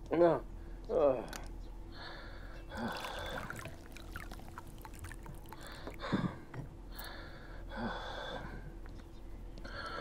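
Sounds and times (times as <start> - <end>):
person breathing: 1.9 - 3.9, 5.4 - 8.7, 9.6 - 10.0.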